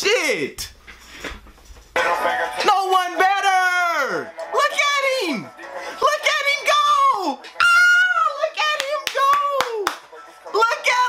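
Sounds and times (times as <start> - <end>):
hand claps: 8.7 - 10.3.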